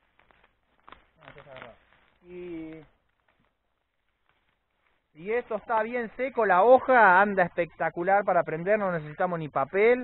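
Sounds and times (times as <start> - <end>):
branch snapping: 0.0 - 5.1
dry branches rustling and crackling: 0.0 - 10.0.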